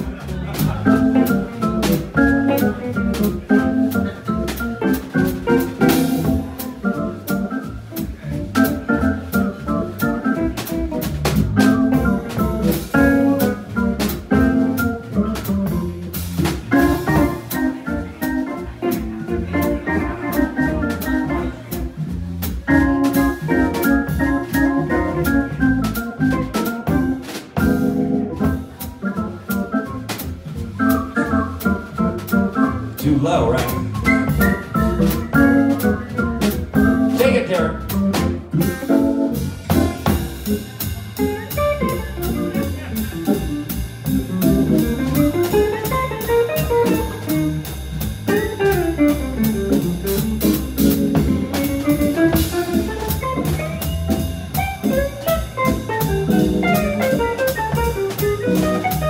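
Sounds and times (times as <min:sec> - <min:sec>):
drum kit with cymbals: 0:00.0 - 0:59.0.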